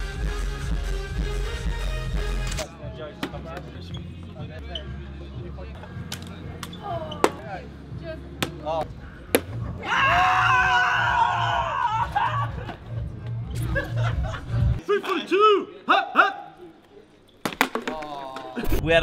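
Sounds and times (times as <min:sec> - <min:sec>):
background music: 0:00.0 - 0:14.8
man shouting: 0:15.2 - 0:16.6
plastic bottle knocking on floor: 0:17.4 - 0:18.1.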